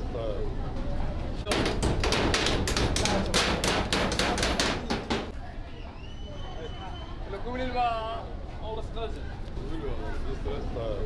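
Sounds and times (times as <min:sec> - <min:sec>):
hammer blows on sheet metal: 0:01.5 - 0:05.4.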